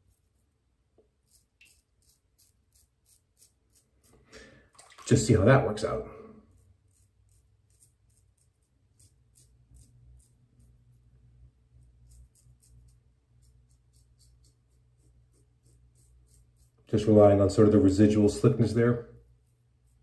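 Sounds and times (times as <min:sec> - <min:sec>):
razor scraping stubble: 0:00.0 - 0:04.3, 0:05.4 - 0:20.0
faint low hum: 0:00.0 - 0:20.0.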